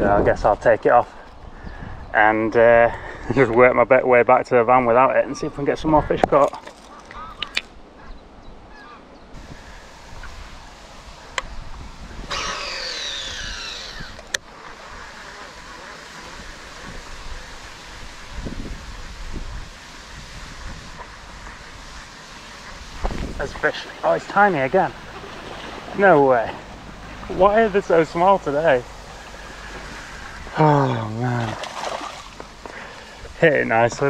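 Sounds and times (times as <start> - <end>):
wind buffeting microphone: 0.0 - 3.6, 7.2 - 30.6
high squeaky chirps: 12.3 - 14.3.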